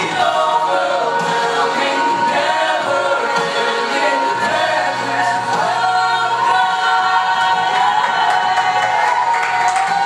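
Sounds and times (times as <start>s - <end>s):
voices singing in harmony: 0.0s - 10.0s.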